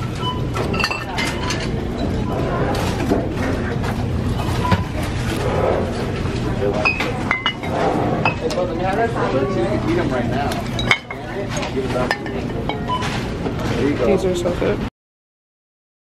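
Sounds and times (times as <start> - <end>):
glass bottles clinking: 0.6 - 2.1, 6.8 - 8.6, 10.5 - 13.1.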